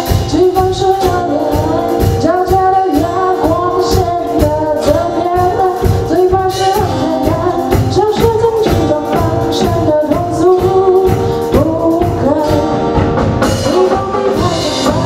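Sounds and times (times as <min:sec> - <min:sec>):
drum kit beat: 0:00.0 - 0:15.0
woman singing: 0:00.0 - 0:15.0.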